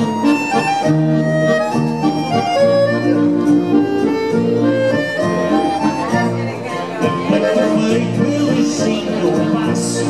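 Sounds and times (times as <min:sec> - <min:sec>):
accordion: 0:00.0 - 0:10.0
guitar: 0:00.0 - 0:10.0
man singing: 0:07.0 - 0:10.0.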